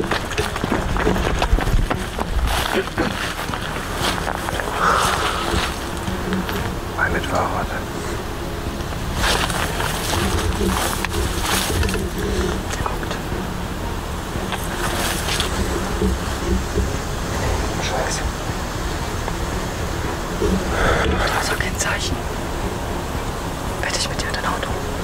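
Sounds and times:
grass and branches rustling: 0.0 - 25.0
steady low rumble: 0.0 - 25.0.

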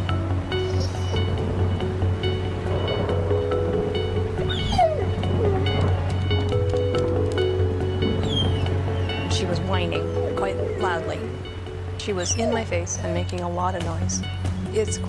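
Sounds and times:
soundtrack music with held notes: 0.0 - 15.0
dog whining: 0.6 - 1.3, 4.5 - 5.9.

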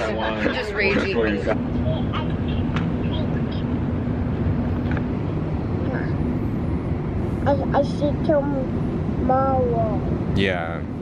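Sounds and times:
people talking: 0.0 - 3.7, 5.8 - 6.2, 7.4 - 10.8.

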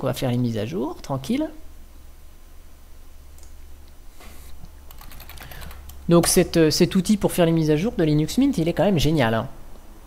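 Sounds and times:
keyboard typing: 4.9 - 6.0.

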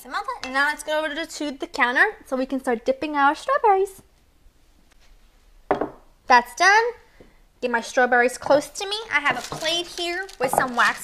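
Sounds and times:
woman's voice: 0.0 - 4.1, 7.6 - 11.0.

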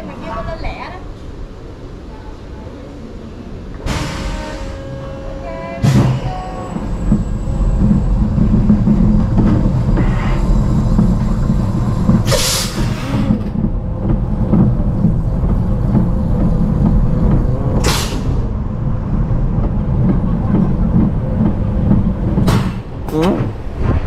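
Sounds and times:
roller coaster lift rattling rumble: 0.0 - 24.0.

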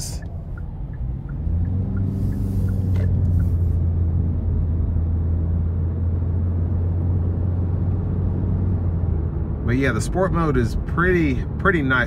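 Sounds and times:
turn signal ticking: 0.0 - 4.4
car engine droning: 0.0 - 12.0
road noise: 0.0 - 12.0.

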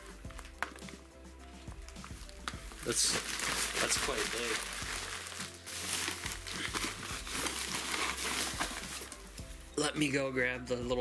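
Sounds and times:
bubble wrap crinkling: 0.0 - 9.8.

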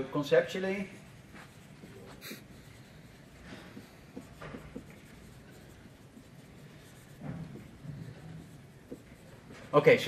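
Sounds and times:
marker scratching on whiteboard: 0.5 - 10.0.

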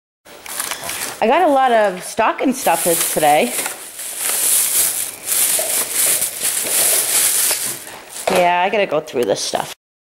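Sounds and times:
plastic bags crinkling: 0.5 - 8.7.

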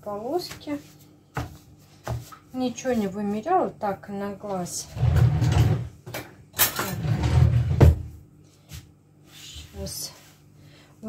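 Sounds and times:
kitchen drawer sliding: 4.9 - 5.9, 6.6 - 8.1.

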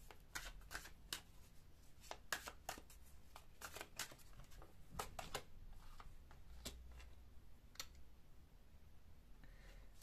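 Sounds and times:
cards being shuffled by hand: 0.0 - 1.4, 2.0 - 7.1.

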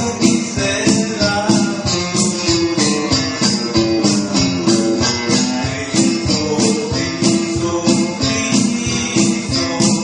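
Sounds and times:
keyboard backing: 0.0 - 10.0
shaken percussion beat: 0.0 - 10.0
strummed acoustic guitar: 0.0 - 10.0.

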